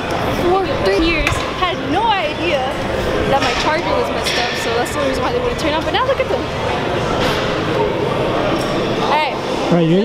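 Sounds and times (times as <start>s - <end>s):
busy gym din: 0.0s - 10.0s.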